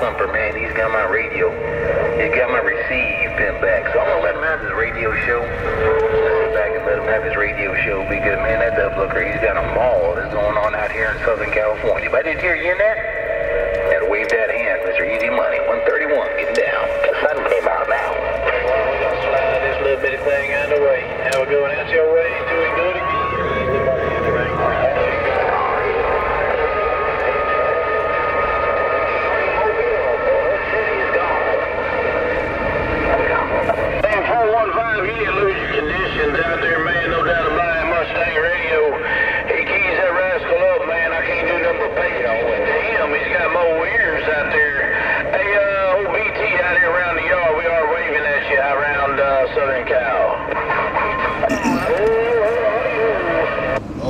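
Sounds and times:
garbled voices over radio speaker: 0:00.0 - 0:28.1, 0:29.1 - 0:32.0, 0:33.0 - 0:54.0
steady radio whistle: 0:00.0 - 0:53.8.

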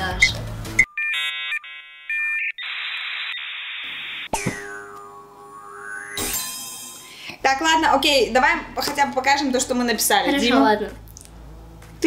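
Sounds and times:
electronic beeps and tones: 0:00.8 - 0:06.2
electronic tone with swooping whistle: 0:04.2 - 0:06.4.

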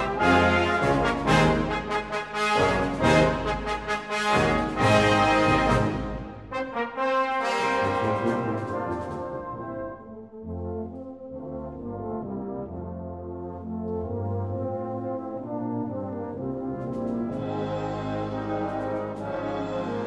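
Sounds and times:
brass band playing chords: 0:00.0 - 0:20.0.

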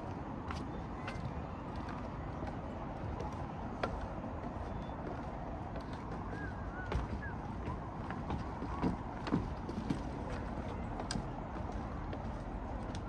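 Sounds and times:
footsteps on wooden boards: 0:00.0 - 0:13.0.

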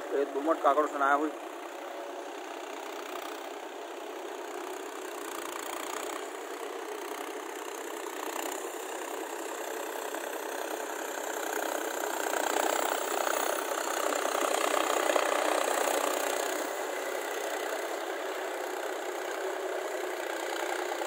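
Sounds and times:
tractor diesel engine running: 0:00.0 - 0:21.0.

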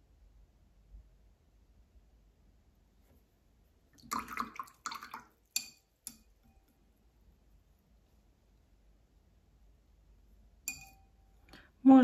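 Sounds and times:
paintbrush clinking on jar: 0:10.7 - 0:11.2.

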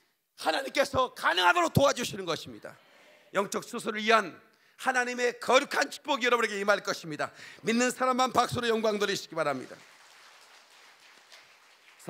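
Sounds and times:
faint applause: 0:09.6 - 0:12.0.

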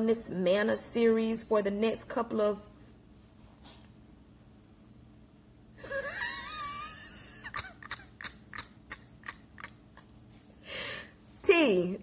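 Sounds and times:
woman laughing hard: 0:05.8 - 0:10.2.

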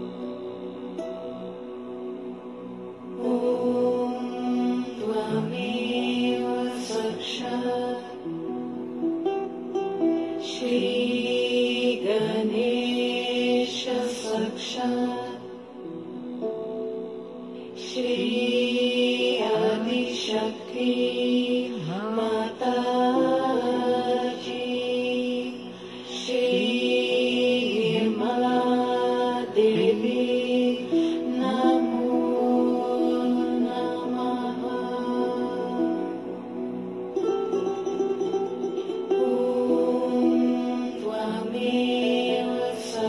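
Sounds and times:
meditation music with chanted mantras: 0:00.0 - 0:37.4, 0:38.8 - 0:43.0.

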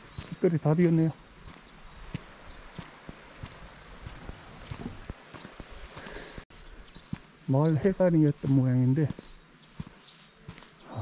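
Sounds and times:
faint footsteps on dirt: 0:00.0 - 0:11.0.

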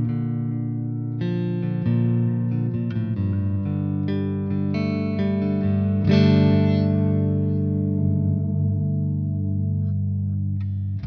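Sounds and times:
overdriven electric guitar chord: 0:00.0 - 0:11.0.

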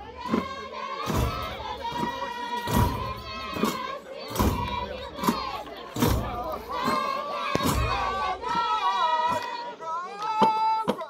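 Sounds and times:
group of voices singing: 0:00.0 - 0:11.0
frame drum strikes: 0:00.2 - 0:08.5.

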